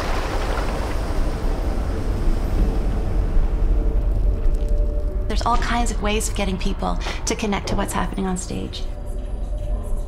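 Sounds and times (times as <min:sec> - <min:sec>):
water washing over rocks: 0:00.0 - 0:01.6
deep steady rumble: 0:00.0 - 0:10.0.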